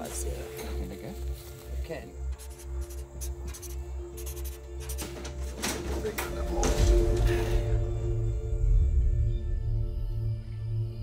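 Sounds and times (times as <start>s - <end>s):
music with sustained tones: 0.0s - 11.0s
pulsing low bass: 7.0s - 11.0s.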